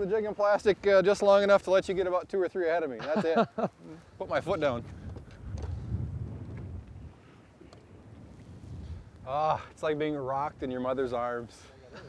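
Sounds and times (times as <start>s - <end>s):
wind and waves rumbling: 4.0s - 12.0s
faint clicks: 7.6s - 7.9s.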